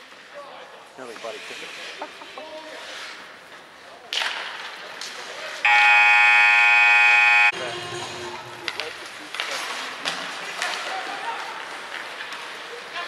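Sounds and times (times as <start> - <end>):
ice arena buzzer: 5.7 - 8.1.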